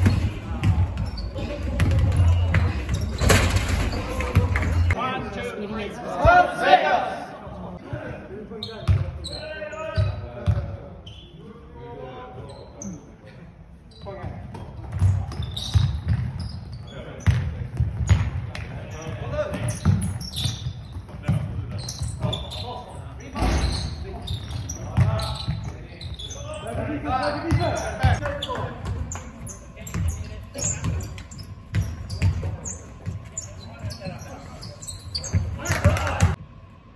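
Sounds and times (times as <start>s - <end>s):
players' voices echoing: 0.0s - 13.5s.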